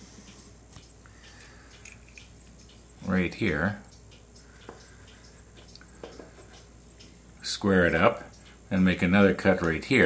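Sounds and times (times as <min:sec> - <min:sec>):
small tick: 0:00.2 - 0:07.2.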